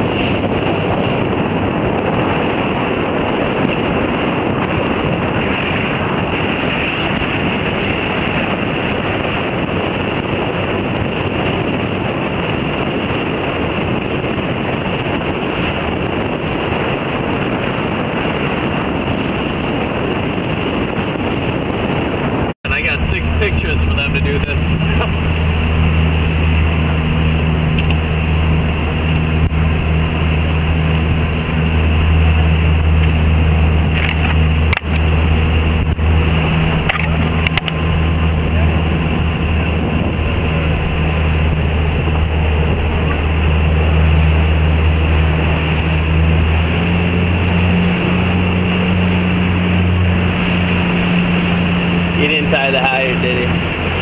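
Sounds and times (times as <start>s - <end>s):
motorboat engine humming: 0.0s - 54.0s
wind and water spray rushing: 0.0s - 54.0s.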